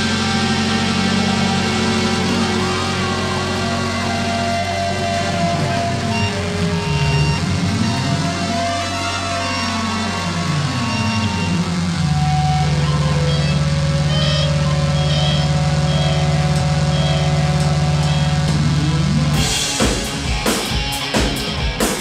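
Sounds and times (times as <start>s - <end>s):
synthesizer pitch sweeps: 0.0s - 20.3s
synthesizer low held note: 0.0s - 20.7s.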